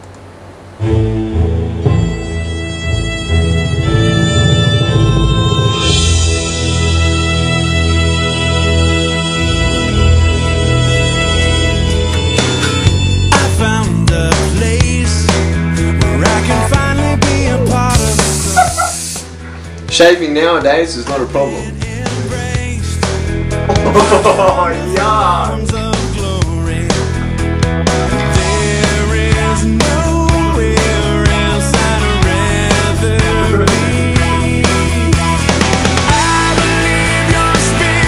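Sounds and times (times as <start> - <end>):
background music: 0.8 - 38.0
aerosol can spraying: 17.8 - 19.3.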